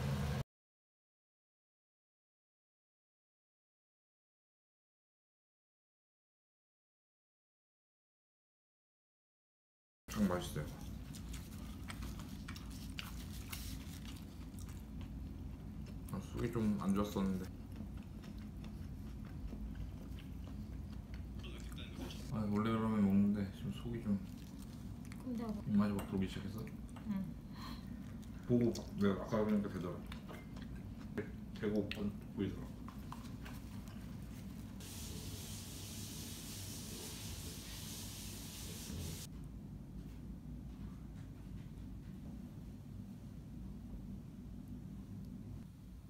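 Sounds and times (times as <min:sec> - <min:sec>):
steady low hum: 0:10.1 - 0:35.6, 0:38.5 - 0:46.0
quiet chewing: 0:10.2 - 0:34.8.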